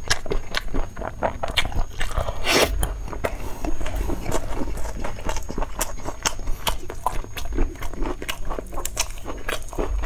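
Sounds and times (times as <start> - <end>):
chewing and biting: 0.0 - 10.0.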